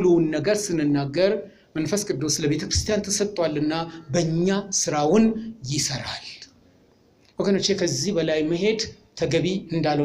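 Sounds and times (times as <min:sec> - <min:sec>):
man speaking into a microphone: 0:00.0 - 0:06.6, 0:07.3 - 0:10.0.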